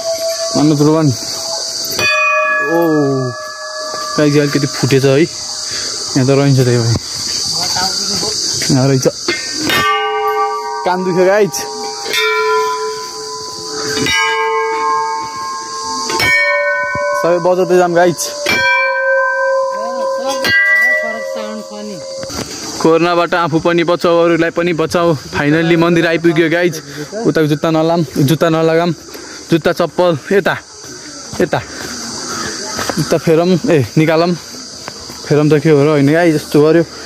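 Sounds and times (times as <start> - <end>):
metal temple bell ringing: 0.0 - 6.9, 9.0 - 24.4.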